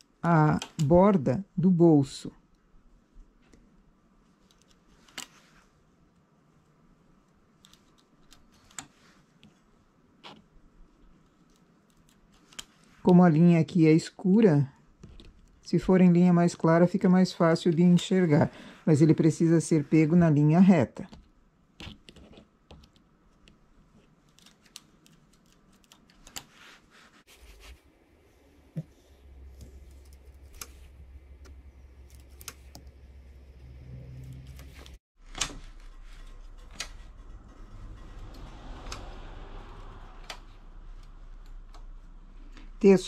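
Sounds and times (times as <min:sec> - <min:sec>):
hands rustling wool: 0:23.6 - 0:31.4
low steady hum: 0:27.2 - 0:43.0.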